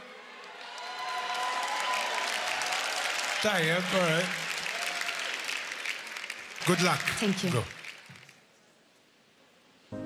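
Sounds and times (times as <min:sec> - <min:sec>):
audience applauding: 0:00.3 - 0:08.4.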